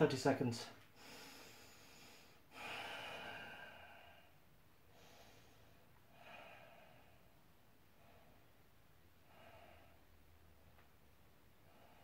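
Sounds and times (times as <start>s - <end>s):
person breathing through nose: 1.0s - 7.3s.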